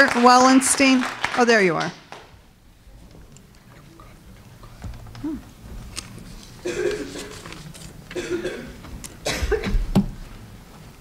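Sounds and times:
person coughing: 6.6s - 7.4s, 8.1s - 9.9s
chair knocking and bumping: 8.2s - 10.3s.

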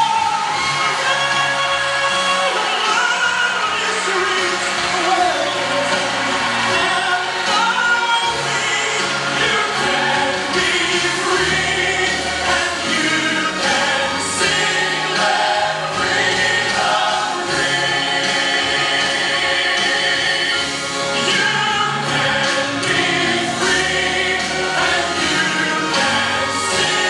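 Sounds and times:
choir singing gospel music: 0.0s - 27.0s
instrumental accompaniment: 0.0s - 27.0s.

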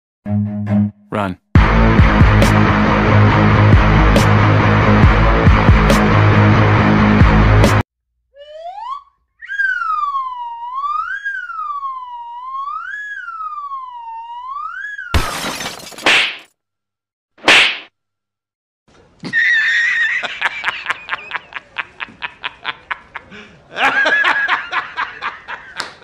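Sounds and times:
gliding wavering whistle tone: 8.4s - 15.2s
hand striking head: 17.4s - 17.9s.

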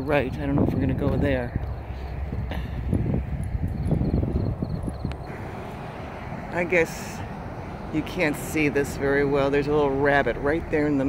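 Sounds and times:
low rumble: 0.3s - 11.0s.

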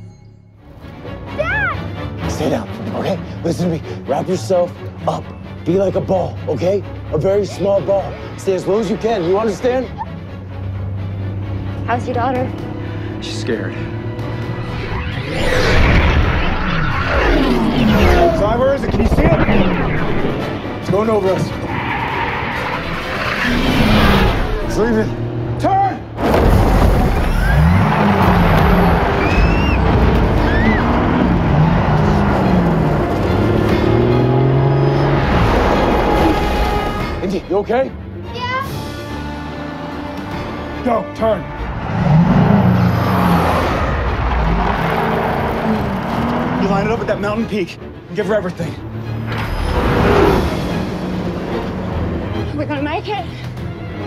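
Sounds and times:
dramatic film score: 0.0s - 54.0s
road noise: 0.6s - 54.0s
heavy vehicle engine at full throttle: 23.7s - 37.1s, 41.4s - 47.2s, 48.8s - 52.7s.

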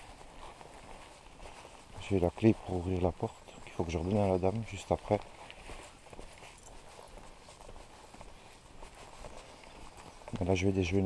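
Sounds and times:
footsteps on paved lane: 0.0s - 11.0s.

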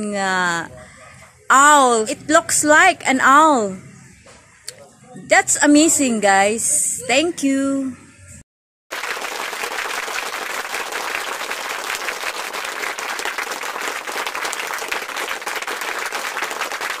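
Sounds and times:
crowd applauding: 8.9s - 17.0s.

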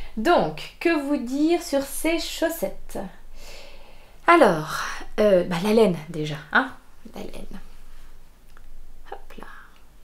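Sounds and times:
woman whispering: 9.0s - 9.8s.

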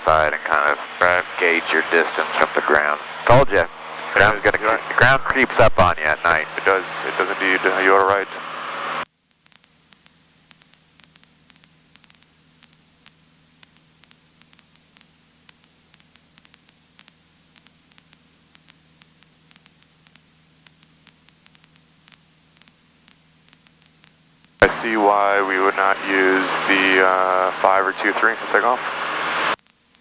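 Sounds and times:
low electrical hum: 0.0s - 30.0s
static hiss: 0.0s - 30.0s
crackling clicks: 9.2s - 24.7s, 29.5s - 30.0s.

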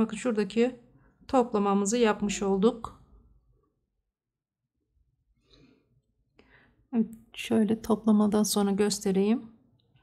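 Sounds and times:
woman speaking: 0.0s - 3.1s, 6.9s - 9.6s.

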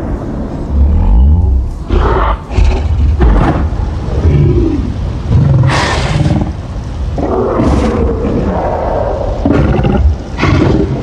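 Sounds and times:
giant ape growling: 0.7s - 3.3s.

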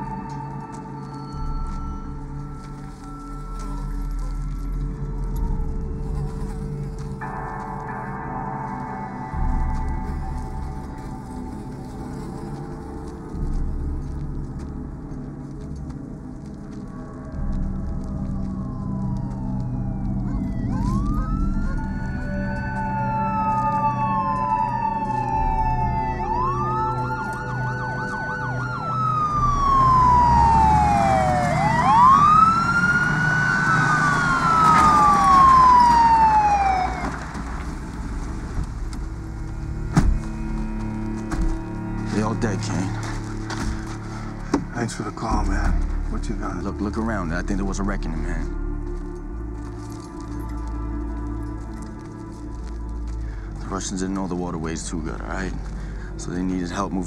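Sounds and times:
low droning music: 0.0s - 57.0s
police sirens wailing: 17.5s - 53.8s.

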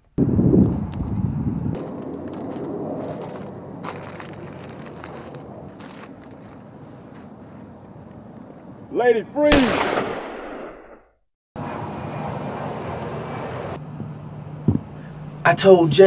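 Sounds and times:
gunshot: 9.5s - 11.0s.

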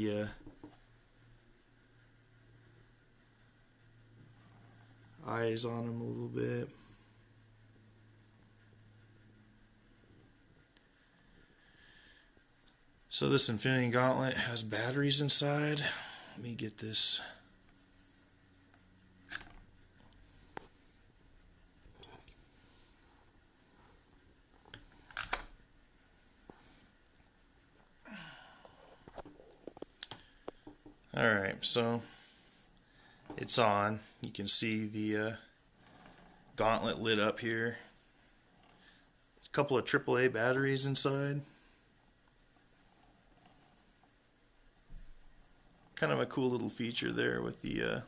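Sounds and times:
faint low hum: 0.0s - 48.0s
soft rustle: 17.0s - 39.5s.

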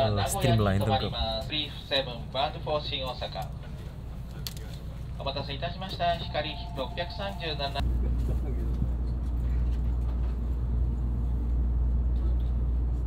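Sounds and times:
on-board announcement: 0.0s - 1.4s, 5.2s - 7.8s
train running low rumble: 0.0s - 13.0s.

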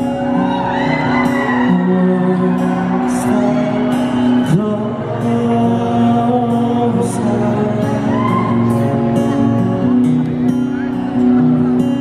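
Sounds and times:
electric and acoustic guitars: 0.0s - 12.0s.

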